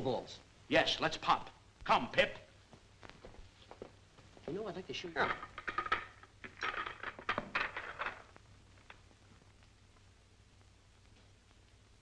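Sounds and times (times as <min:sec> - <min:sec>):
pool balls clacking: 0:05.2 - 0:08.4.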